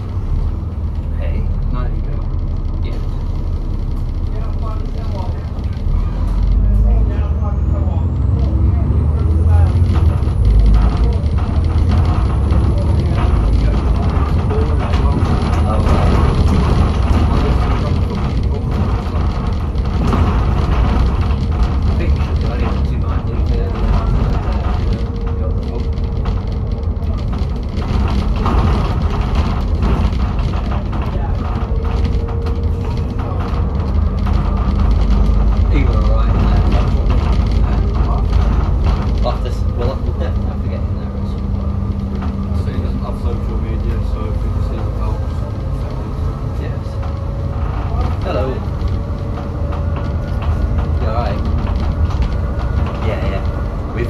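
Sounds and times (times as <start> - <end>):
bus engine running: 0.0 - 54.0
rattles and knocks from bus body: 0.0 - 54.0.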